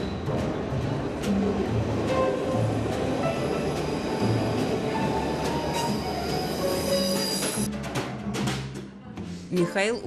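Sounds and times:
train passing with rail noise: 0:00.0 - 0:07.7
high squealing wheels: 0:02.1 - 0:07.7.

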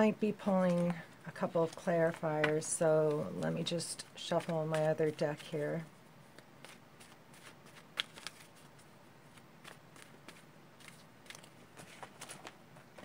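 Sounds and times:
cards being shuffled: 0:00.6 - 0:13.0.

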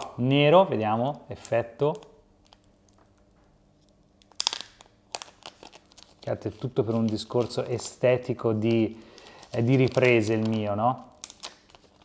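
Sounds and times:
plastic crinkling: 0:01.3 - 0:12.0
plastic film peeling: 0:01.3 - 0:12.0.

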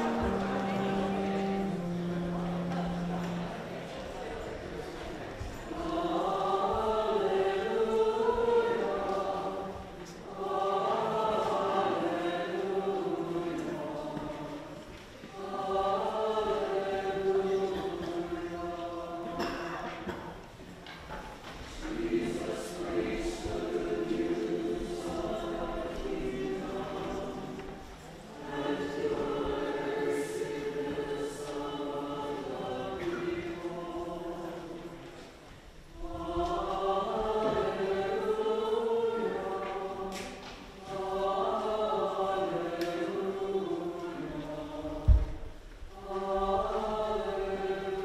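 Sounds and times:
church choir singing: 0:00.0 - 0:48.0.

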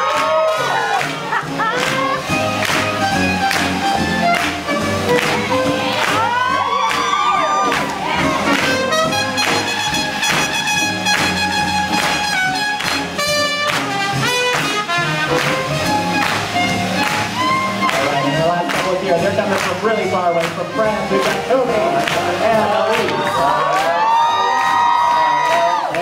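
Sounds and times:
crowd cheering and clapping: 0:00.0 - 0:26.0
swing jazz band with brass: 0:00.0 - 0:26.0.

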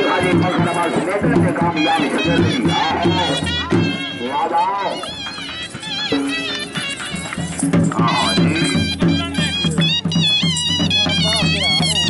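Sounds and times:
drum beat: 0:00.0 - 0:12.0.

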